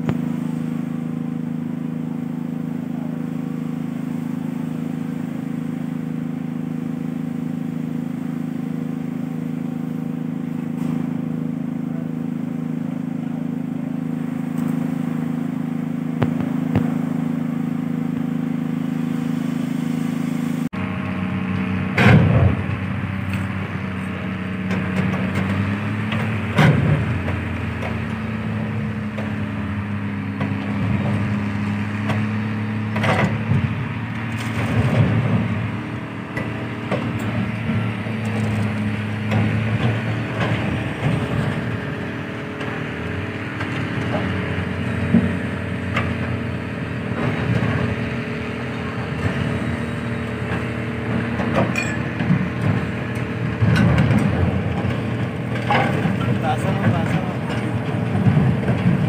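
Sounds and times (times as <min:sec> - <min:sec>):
low engine hum: 0:00.0 - 0:59.0.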